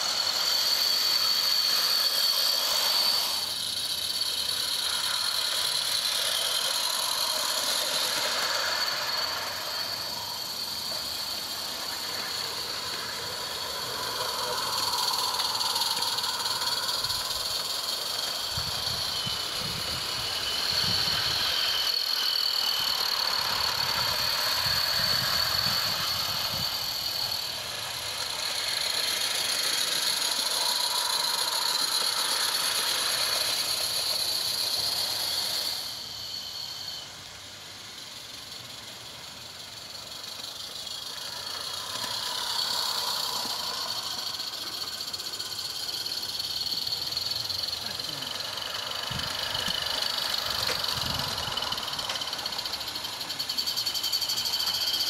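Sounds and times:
steam hiss with thin tones: 0.0 - 55.0.

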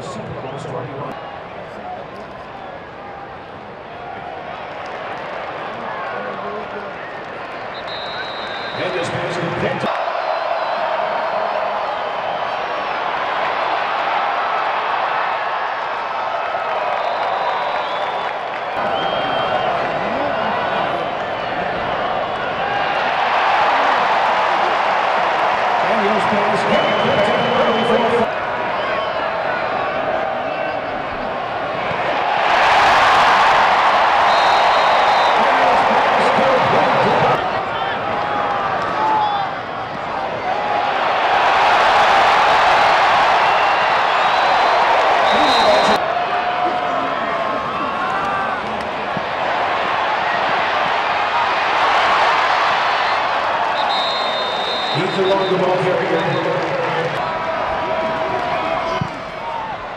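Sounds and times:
stadium crowd voices and shouts: 0.0 - 59.9.

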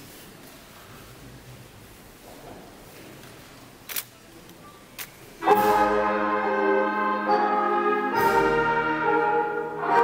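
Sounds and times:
wind band playing loud chord: 5.4 - 10.0.

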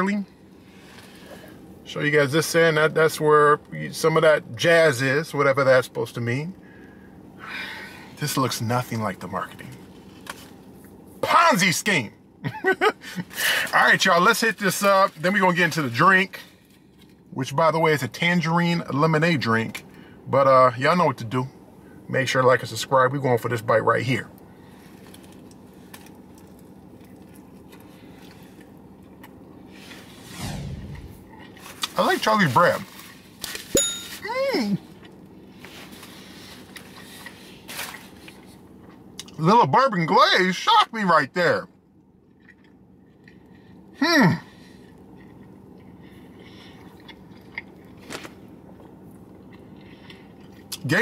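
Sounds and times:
steady low hum: 0.0 - 51.0
person chewing food: 24.9 - 29.5, 42.2 - 43.9, 44.6 - 50.8.

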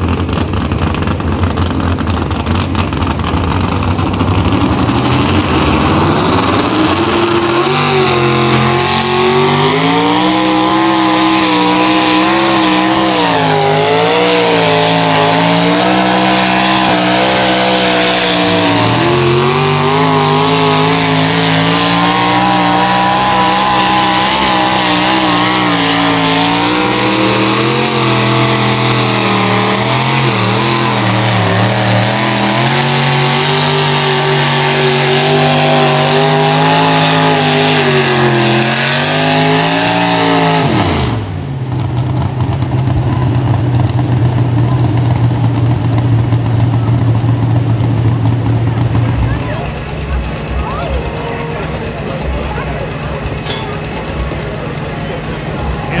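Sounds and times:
tractor engine running hard: 0.0 - 56.0.

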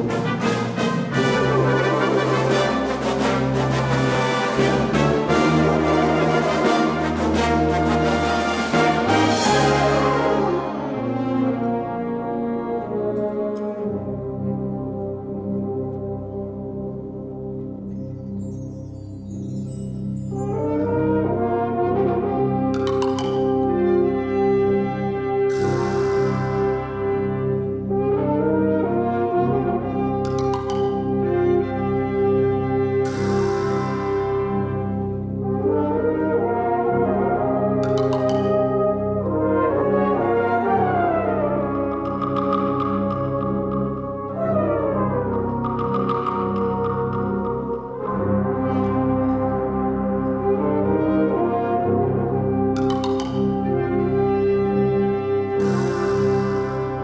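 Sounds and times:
brass band fanfare: 0.0 - 13.0
brass band holding chords: 0.0 - 17.8, 20.3 - 57.0.

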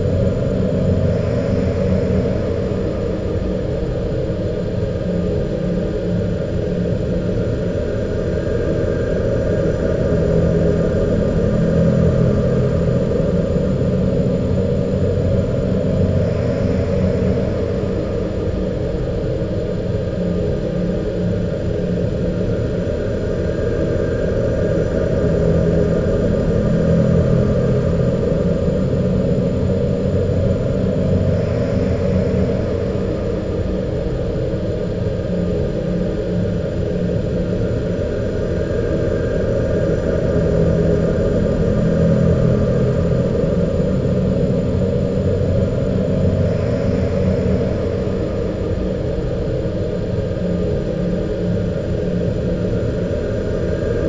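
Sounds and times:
dark ambient music: 0.0 - 54.0.

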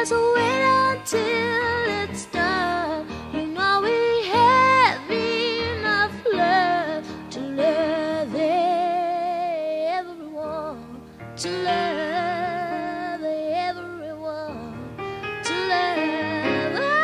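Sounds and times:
soft instrumental backing: 0.0 - 17.0
woman singing with vibrato: 0.0 - 17.0.

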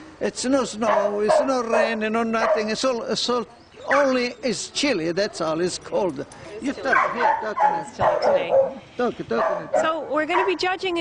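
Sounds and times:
dog barking: 0.8 - 2.8, 3.9 - 4.2, 6.9 - 10.7.

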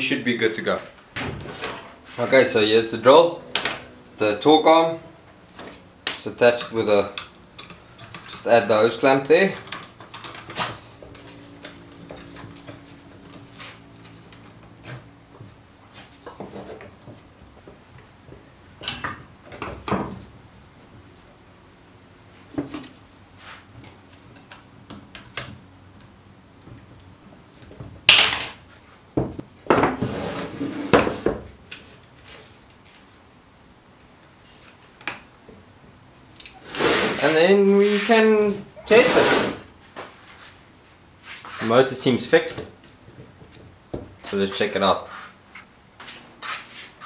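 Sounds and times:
faint steady hum: 0.0 - 47.0.

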